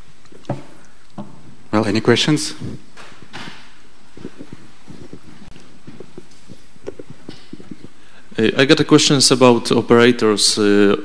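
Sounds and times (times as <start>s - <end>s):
faint room noise: 0.0s - 11.0s
footsteps on hard floor: 3.0s - 8.0s.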